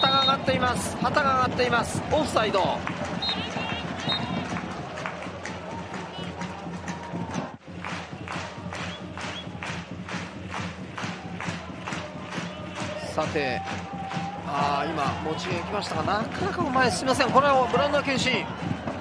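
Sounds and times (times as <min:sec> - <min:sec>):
stadium crowd noise: 0:00.0 - 0:19.0
supporters clapping in rhythm: 0:00.0 - 0:19.0.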